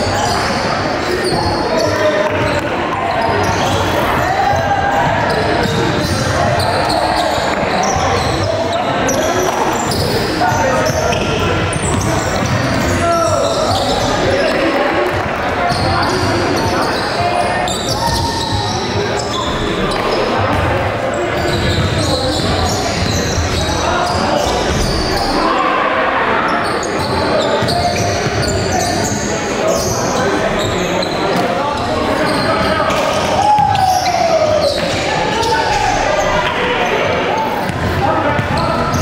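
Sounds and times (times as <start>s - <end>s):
players' voices and calls: 0.0s - 39.0s.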